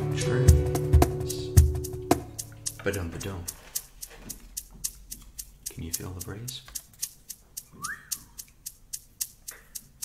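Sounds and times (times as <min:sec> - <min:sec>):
drum machine hi-hat ticks: 0:00.0 - 0:10.0.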